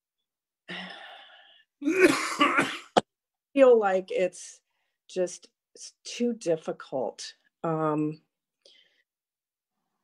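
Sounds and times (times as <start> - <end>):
person coughing: 1.8 - 3.1.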